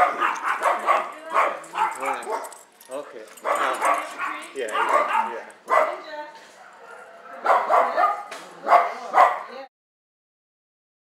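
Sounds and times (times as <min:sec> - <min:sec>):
dog yelping barks: 0:00.0 - 0:02.7, 0:03.4 - 0:09.6.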